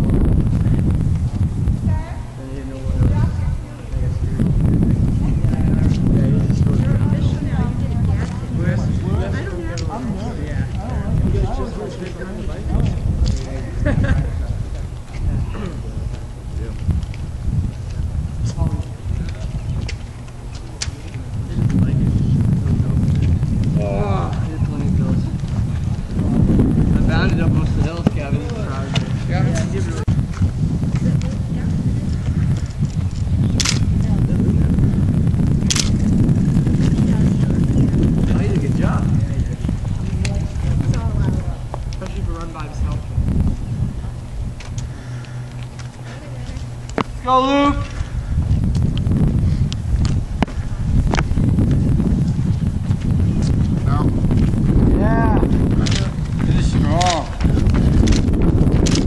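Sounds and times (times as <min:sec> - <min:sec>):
wind rumble on microphone: 0:00.0 - 0:59.0
people talking indistinctly: 0:01.8 - 0:48.5, 0:53.4 - 0:58.2
sharp click: 0:33.6 - 0:33.8.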